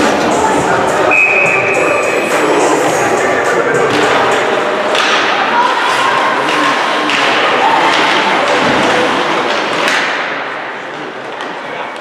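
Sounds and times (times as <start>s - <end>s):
sticks and puck clacking: 3.9s - 12.0s.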